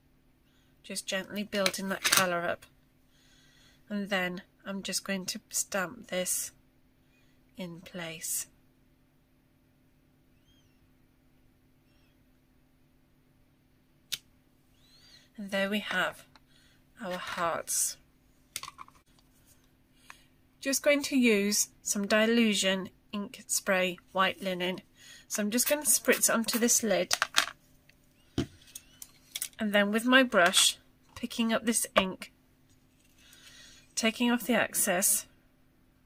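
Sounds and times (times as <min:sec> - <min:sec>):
faint high chirps: 0:10.3 - 0:10.9, 0:11.8 - 0:12.2.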